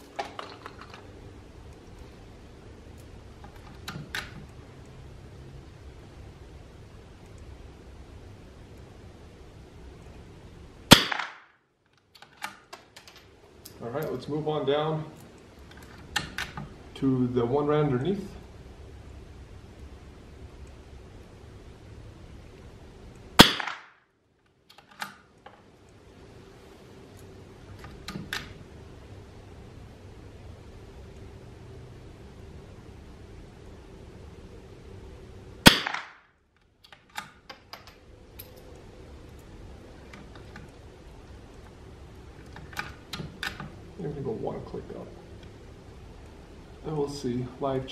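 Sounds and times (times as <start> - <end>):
rifle shot: 10.9 - 11.6, 23.4 - 24.0, 35.6 - 36.3
scope turret click: 35.7 - 38.6.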